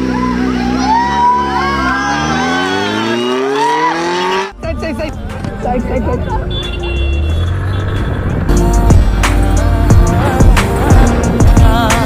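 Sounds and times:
motorcycle engine accelerating: 0.0 - 4.8
crowd noise: 0.0 - 8.0
road noise: 0.0 - 12.0
music: 4.6 - 7.4, 8.4 - 12.0.

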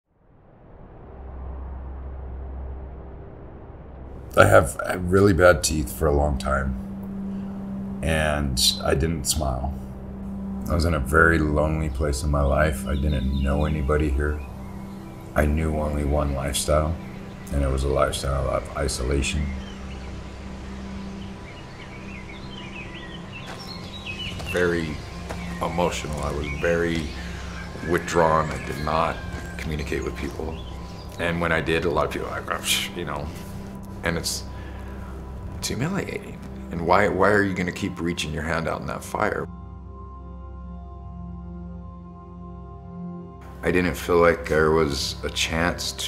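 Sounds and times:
small birds chirping: 5.6 - 39.5.

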